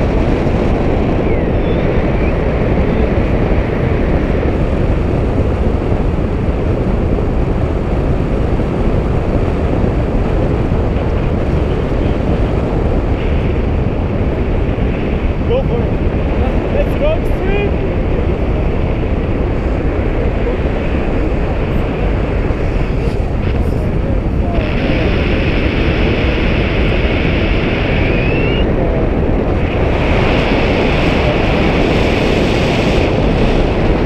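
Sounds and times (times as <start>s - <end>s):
wind rushing over microphone: 0.0s - 34.0s.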